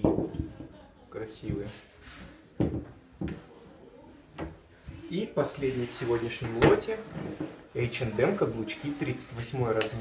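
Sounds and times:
shoes knocking on hard surface: 2.6s - 3.4s.

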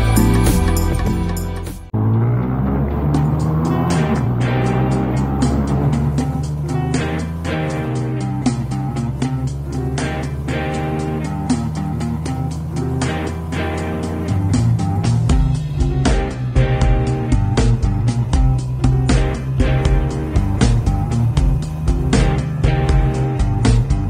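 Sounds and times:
rock music with drum beat: 0.0s - 1.9s, 3.4s - 24.0s
motorcycle engine running: 1.9s - 24.0s.

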